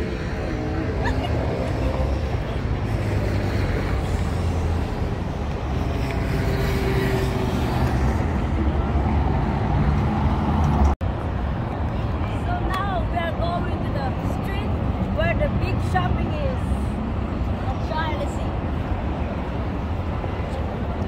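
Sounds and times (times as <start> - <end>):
city road traffic rumble: 0.0 - 21.0.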